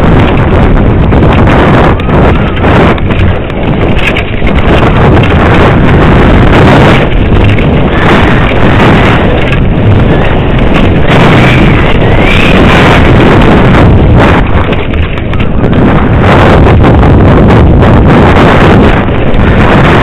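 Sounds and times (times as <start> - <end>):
bike rattling over rough trail: 0.0 - 20.0
wind buffeting microphone: 0.0 - 20.0.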